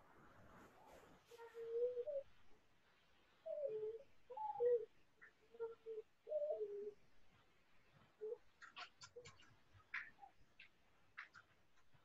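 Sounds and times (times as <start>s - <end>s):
bird cooing: 1.4s - 2.3s, 3.4s - 7.0s, 8.2s - 9.4s.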